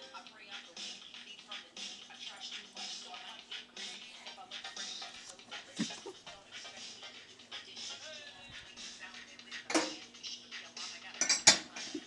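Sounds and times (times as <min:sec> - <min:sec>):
faint music: 0:00.0 - 0:12.0.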